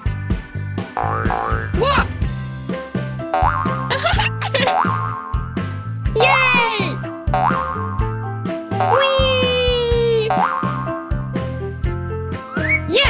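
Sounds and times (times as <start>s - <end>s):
cartoon background music: 0.8s - 13.0s
wordless cartoon voices: 6.2s - 7.0s, 8.9s - 10.3s.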